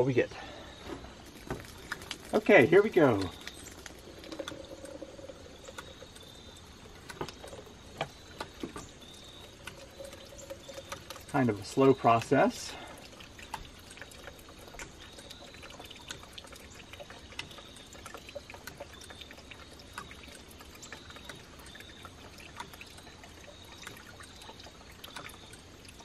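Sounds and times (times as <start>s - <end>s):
water trickling and dripping: 0.0s - 26.0s
small irregular clicks: 1.2s - 26.0s.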